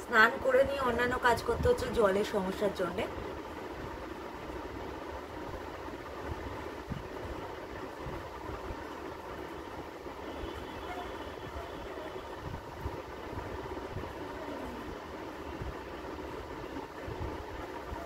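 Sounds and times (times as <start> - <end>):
low background hum and hiss: 0.0 - 18.0.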